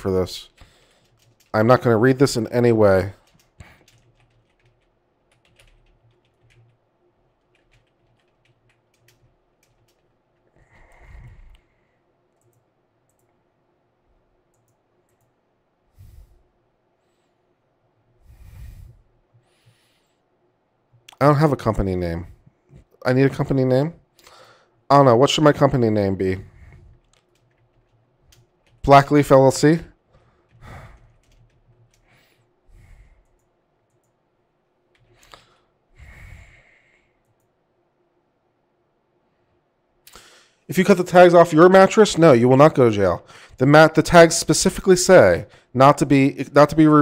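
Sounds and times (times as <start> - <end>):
heavy breath through nose: 10.6 - 12.0, 15.9 - 17.4, 18.2 - 20.2, 35.1 - 37.2.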